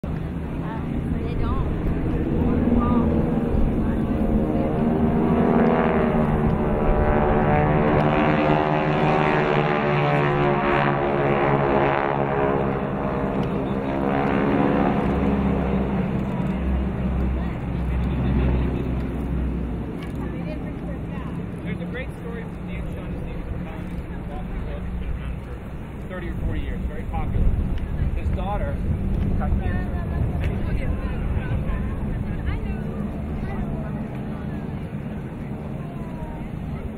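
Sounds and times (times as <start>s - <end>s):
propeller planes droning overhead: 0.0s - 36.9s.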